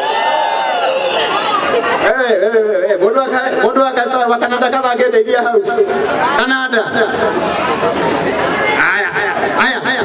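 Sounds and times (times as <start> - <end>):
crowd voices calling out: 0.0 - 3.7, 5.8 - 10.0
man's amplified voice: 2.0 - 7.4, 8.8 - 10.0.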